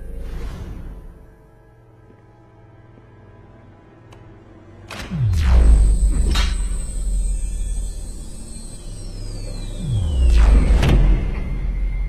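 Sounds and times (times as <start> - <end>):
low rumbling drone: 5.0 - 12.0
deep low swell: 5.1 - 12.0
high tone gliding downward: 5.1 - 12.0.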